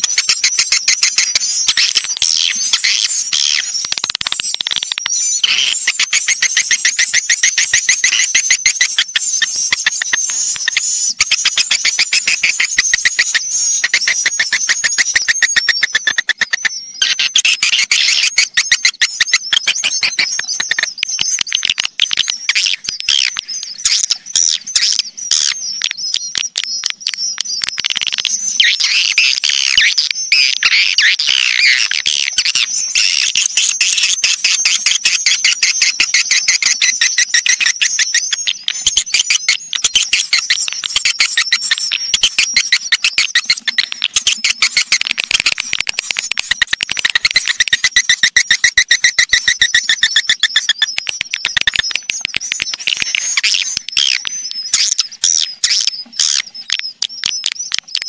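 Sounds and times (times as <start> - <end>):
swiftlets chirping and twittering: 0.0 - 58.0.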